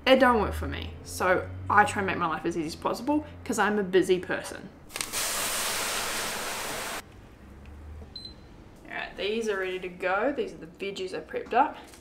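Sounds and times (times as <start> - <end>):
water pouring into pan of grains: 4.9 - 7.0.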